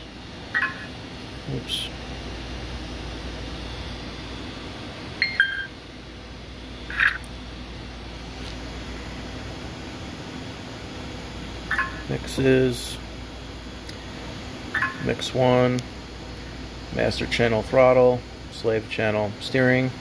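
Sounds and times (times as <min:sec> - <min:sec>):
low background hum: 0:00.0 - 0:20.0
short electronic beeps: 0:05.2 - 0:05.7.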